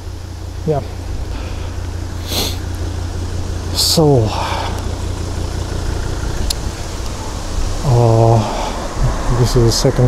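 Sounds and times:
low street rumble: 0.0 - 10.0
noisy hiss: 0.0 - 10.0.

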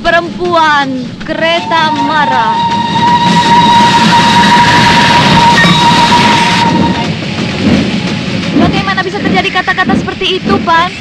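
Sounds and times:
steam engine hissing and rumble: 0.0 - 11.0
steam locomotive whistle: 1.4 - 7.1.

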